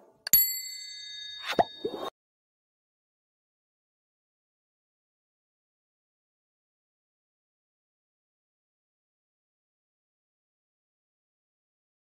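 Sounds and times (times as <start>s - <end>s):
bell-like ding: 0.3s - 2.1s.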